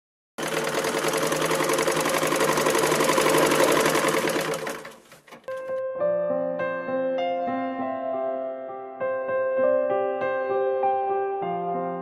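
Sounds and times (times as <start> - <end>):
fast mechanical clatter: 0.4 - 5.7.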